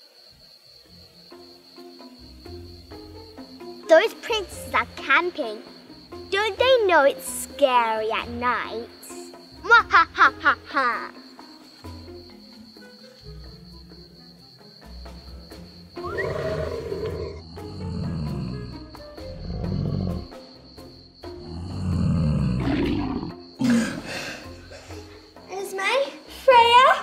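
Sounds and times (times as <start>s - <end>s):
soft background music: 0.6s - 27.0s
lion roaring: 16.0s - 18.7s, 19.3s - 20.3s, 21.5s - 24.3s.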